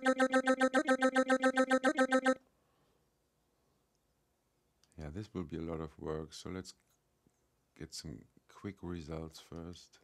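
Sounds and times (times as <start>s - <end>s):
synthesized voice looping dah: 0.0s - 2.4s.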